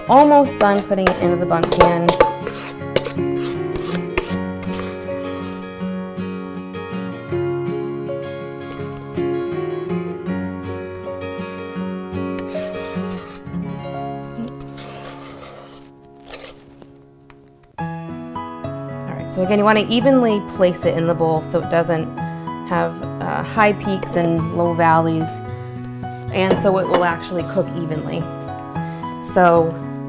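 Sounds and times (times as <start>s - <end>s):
spoon scraping batter from bowl: 0.0s - 5.7s, 12.4s - 13.5s, 14.4s - 16.8s
soft background music: 0.0s - 30.0s.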